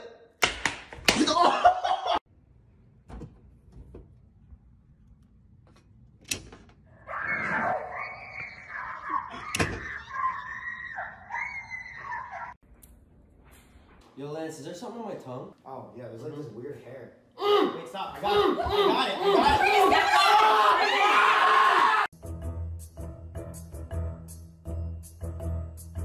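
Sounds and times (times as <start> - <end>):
hand slapping a face: 0.4 - 1.3
circuit breaker switches clicking: 6.2 - 6.8
high-pitched screaming: 7.0 - 12.6
loud cry: 17.4 - 22.1.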